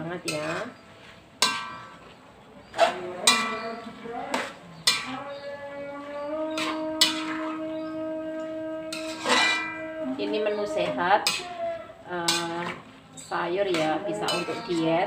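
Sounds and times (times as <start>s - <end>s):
metal spatula clanking on wok: 0.2s - 0.8s, 1.4s - 2.1s, 2.7s - 5.4s, 6.5s - 7.9s, 8.8s - 15.0s.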